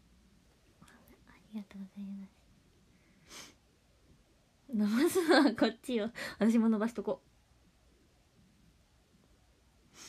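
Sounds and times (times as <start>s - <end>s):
woman speaking quietly: 0.8s - 2.4s.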